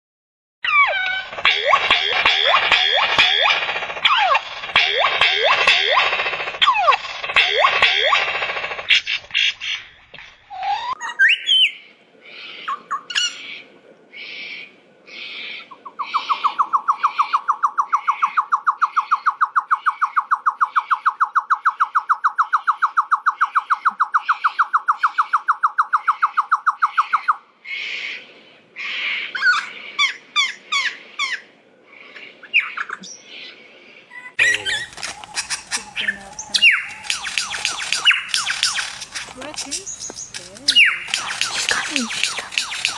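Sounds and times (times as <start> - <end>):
lyrebird singing loud calls: 0.7 - 28.2, 34.2 - 42.9
rapid trill of clicks: 1.0 - 10.3, 34.8 - 42.9
repeated high bird notes: 1.2 - 8.3, 34.2 - 39.0, 39.6 - 42.9.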